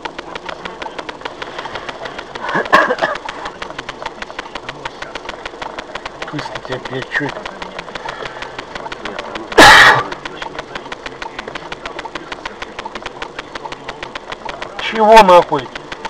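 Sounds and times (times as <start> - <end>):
car engine idling: 0.0 - 16.0
loud burst of noise: 0.0 - 16.0
rapid even ticking: 0.0 - 16.0.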